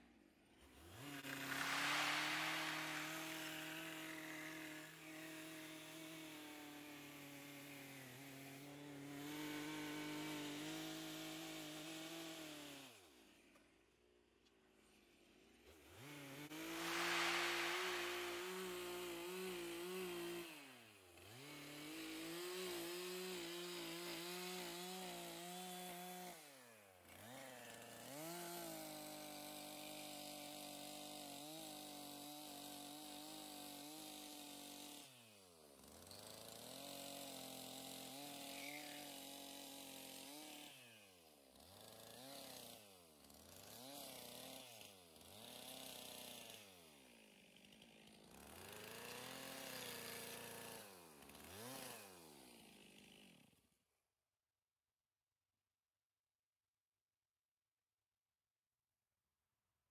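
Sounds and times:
chainsaw cutting log: 0.1 - 13.7, 14.8 - 53.8.

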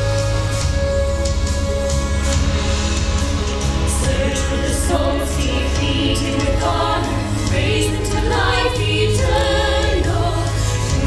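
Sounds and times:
women singing together: 3.9 - 11.0.

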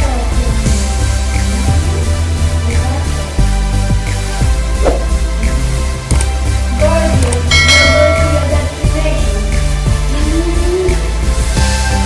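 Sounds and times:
background music: 0.0 - 12.0
bright bell chime: 7.5 - 8.9.

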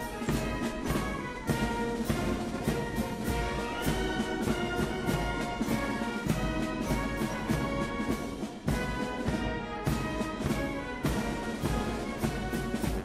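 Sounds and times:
brass band music: 0.0 - 13.0
steady drum beat: 0.0 - 13.0.

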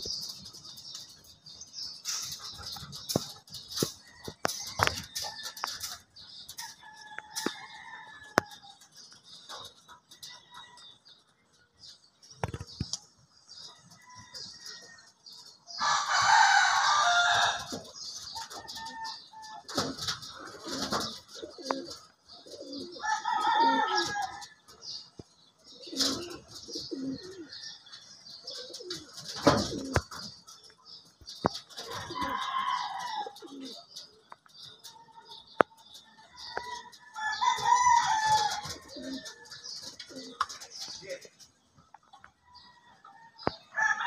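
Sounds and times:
taps and clicks on metal roof: 0.0 - 7.6, 28.6 - 42.4
pigeons cooing: 0.0 - 10.9, 14.3 - 41.5
rooster crowing: 15.8 - 17.8, 23.0 - 24.4, 36.5 - 39.2, 42.6 - 44.0.

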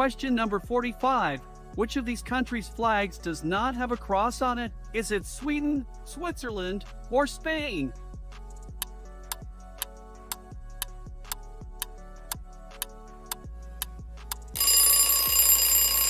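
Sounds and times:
background music: 0.0 - 16.0
alarm clock ringing: 14.6 - 16.0.

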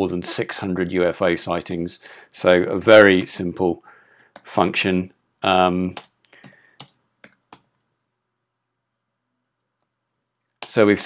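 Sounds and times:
computer keyboard keystrokes: 6.0 - 7.7.

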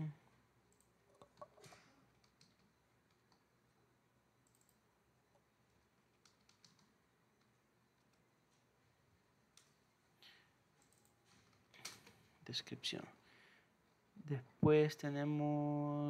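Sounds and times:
computer keyboard clicks: 0.7 - 3.4, 4.4 - 4.8, 6.1 - 8.2, 10.8 - 12.1.

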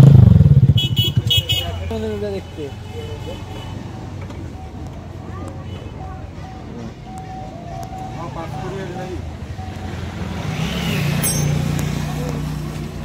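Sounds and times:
vehicle engine humming: 0.0 - 13.0.

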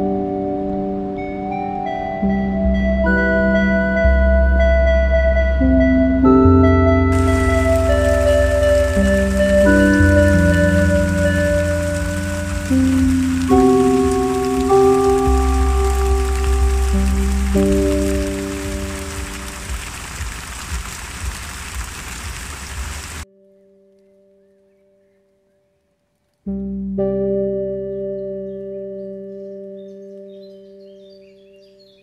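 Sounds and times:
slow music of held notes: 0.0 - 32.0
rain falling on the sea: 7.1 - 23.2.

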